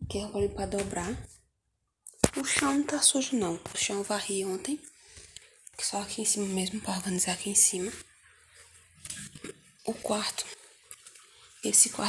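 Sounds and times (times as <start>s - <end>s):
woman speaking: 0.0s - 1.3s, 2.2s - 4.9s, 5.8s - 8.1s, 9.8s - 10.6s, 11.6s - 12.0s.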